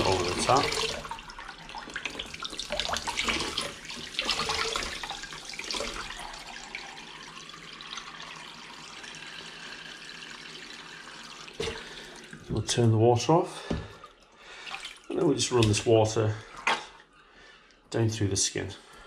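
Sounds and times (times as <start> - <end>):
tap water splashing into bowl: 11.5 - 12.4.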